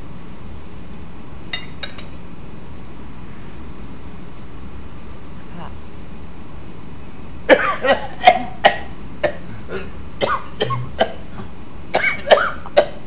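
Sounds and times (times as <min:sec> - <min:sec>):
old man coughing: 0:07.5 - 0:13.0.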